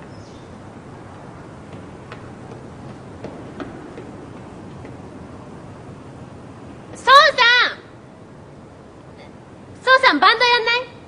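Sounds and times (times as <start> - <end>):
steady low hiss: 0.0 - 11.0.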